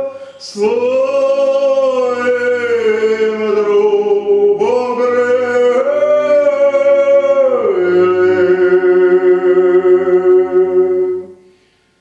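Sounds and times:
two men singing a cappella: 0.0 - 11.3.

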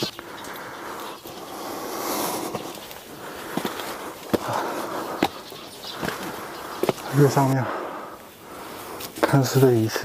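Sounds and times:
footsteps on stone steps: 0.0 - 10.0.

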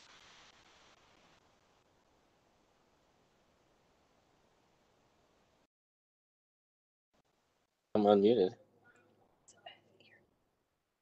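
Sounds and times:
faint voice over video call: 8.0 - 8.6.

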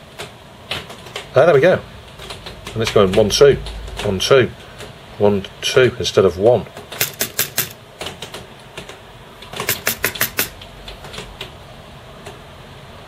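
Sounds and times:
fingers tapping keyboard keys: 0.2 - 1.3, 2.1 - 4.2, 6.7 - 11.6.

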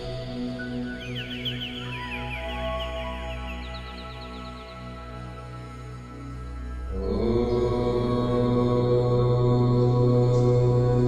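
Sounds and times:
low chanted drone: 0.0 - 11.0.

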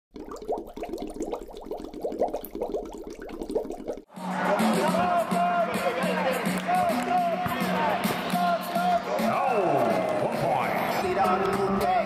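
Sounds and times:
underwater air bubbles: 0.1 - 4.1.

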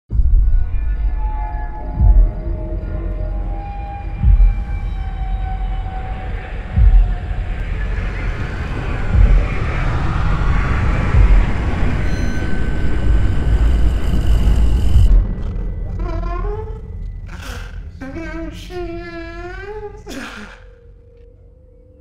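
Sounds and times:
low rumbling drone: 0.2 - 21.8.

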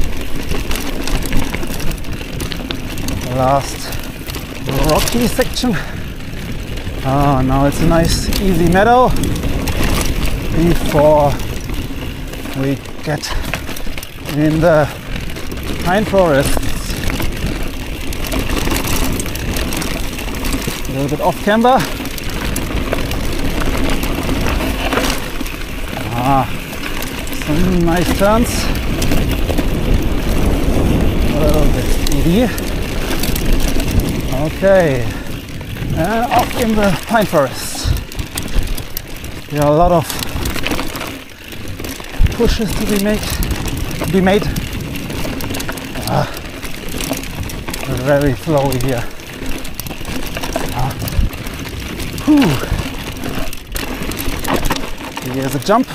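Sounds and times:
bike rattles and clicks: 0.0 - 55.9
tyres rumbling on dirt: 0.0 - 55.9
wind on microphone: 21.8 - 41.0, 41.6 - 54.9.

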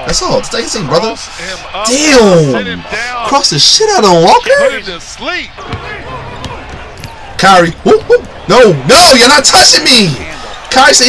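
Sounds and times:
arena background noise: 0.0 - 11.0
basketball bouncing on hardwood: 5.6 - 7.4.

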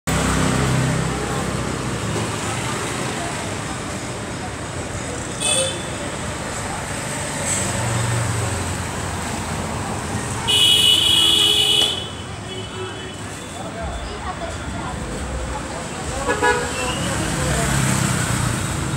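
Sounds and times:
street traffic: 0.0 - 18.9
vehicle horn blasts: 10.5 - 13.2.

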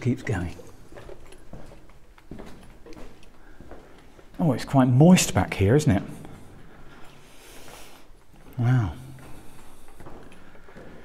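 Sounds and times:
footsteps on rocky floor: 0.0 - 11.0.

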